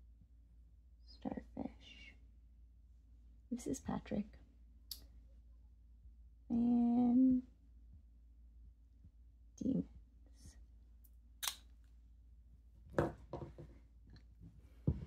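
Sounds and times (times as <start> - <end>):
knock on desk: 13.0 - 13.7.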